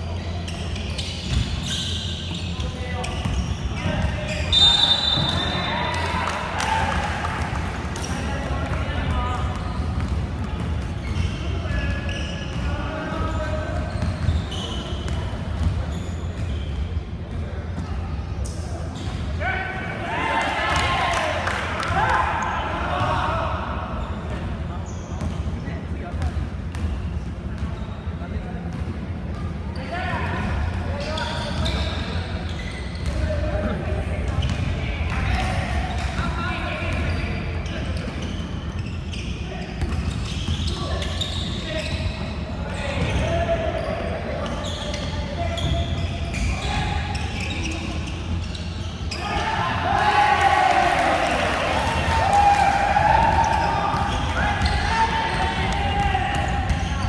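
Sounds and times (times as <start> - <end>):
players calling out: 48.5 - 57.0.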